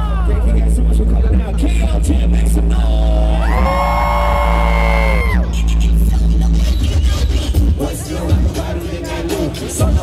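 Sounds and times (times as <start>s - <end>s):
live hip-hop music: 0.0s - 10.0s.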